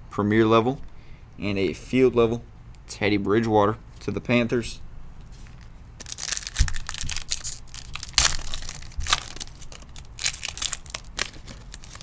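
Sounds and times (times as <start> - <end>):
wrapper crinkling and tearing: 5.5 - 12.0.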